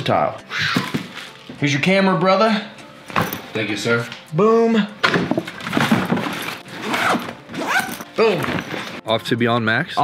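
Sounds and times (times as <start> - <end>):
zipper running on bag: 5.8 - 9.0.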